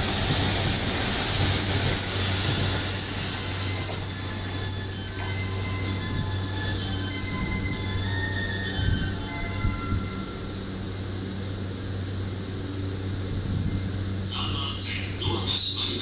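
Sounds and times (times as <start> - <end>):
electric train humming: 0.0 - 16.0.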